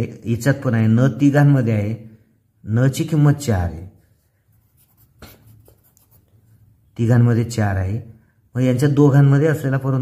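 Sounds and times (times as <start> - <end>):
pencil scratching on paper: 4.2 - 6.4.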